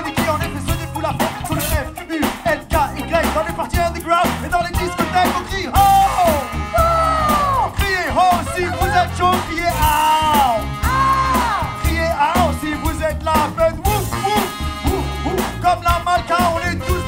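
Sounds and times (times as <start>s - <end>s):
funk band playing: 0.0s - 17.0s
person singing: 0.0s - 17.0s.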